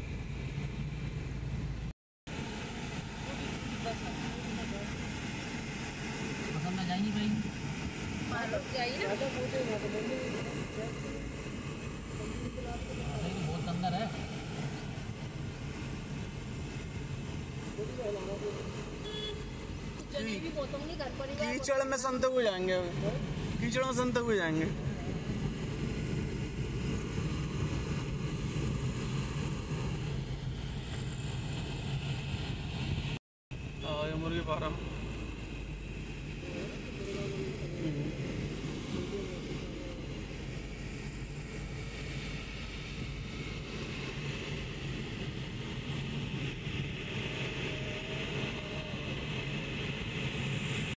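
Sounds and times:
car engine hum: 0.0s - 42.1s.

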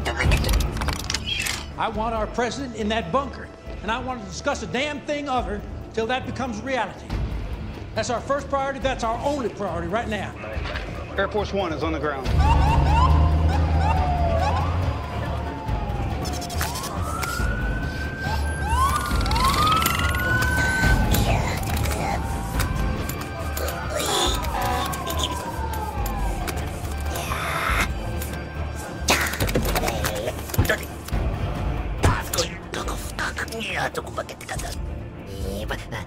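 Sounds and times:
sirens wailing: 12.2s - 29.0s.

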